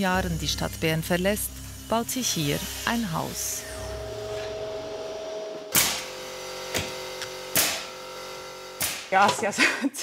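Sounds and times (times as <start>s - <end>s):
steady hum: 0.0s - 9.1s
pneumatic nail gun firing: 5.7s - 9.2s.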